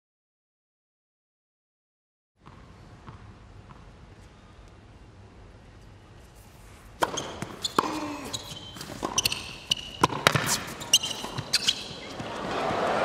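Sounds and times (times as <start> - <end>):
tennis ball bouncing: 2.4 - 3.9, 7.0 - 12.8
shoe squeaks: 6.5 - 12.5
racket striking ball: 7.0 - 12.8
crowd noise: 10.6 - 13.0.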